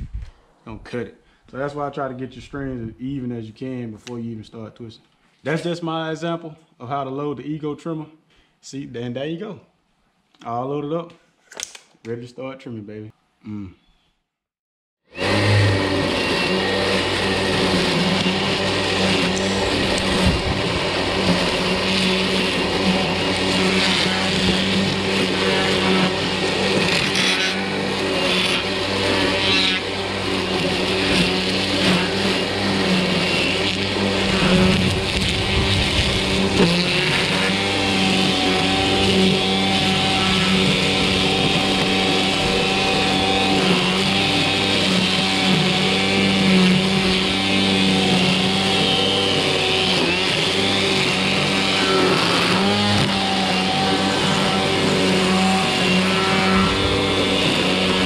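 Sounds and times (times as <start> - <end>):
string trimmer whirring through grass: 15.1 - 58.0.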